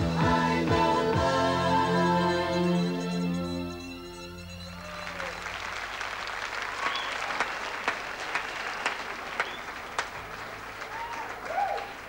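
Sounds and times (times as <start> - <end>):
calls and whistles: 1.8 - 7.5, 8.4 - 10.6
audience applauding: 4.8 - 12.0.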